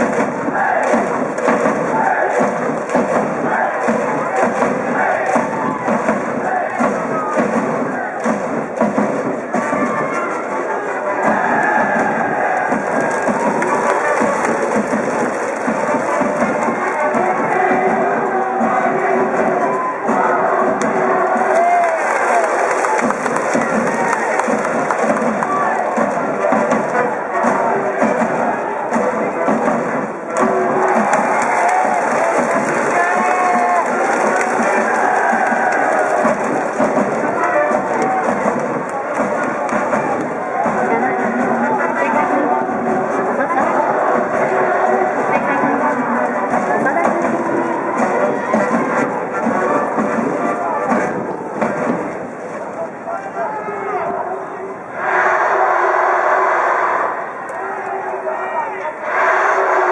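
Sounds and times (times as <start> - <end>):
brass band playing: 0.0 - 52.3
crowd chanting: 0.0 - 59.9.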